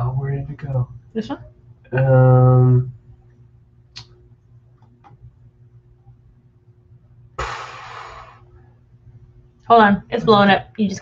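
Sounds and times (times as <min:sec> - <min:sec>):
burst of breath: 0:07.4 - 0:08.5.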